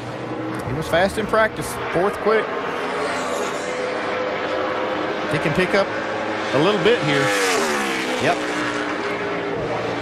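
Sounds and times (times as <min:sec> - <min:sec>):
race car engine at full throttle: 0:00.0 - 0:10.0.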